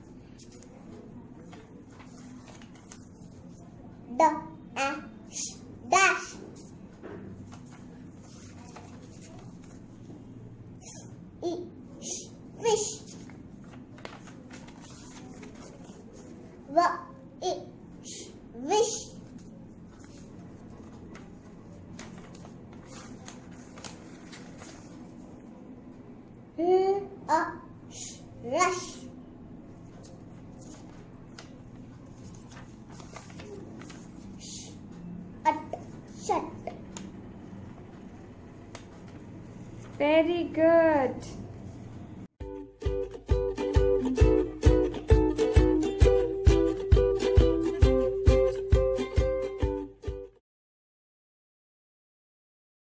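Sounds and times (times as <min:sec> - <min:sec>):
low room hum: 0:00.0 - 0:42.3
paper card handling: 0:01.5 - 0:03.4, 0:07.4 - 0:09.9, 0:13.1 - 0:16.5, 0:19.2 - 0:25.3, 0:29.8 - 0:34.3.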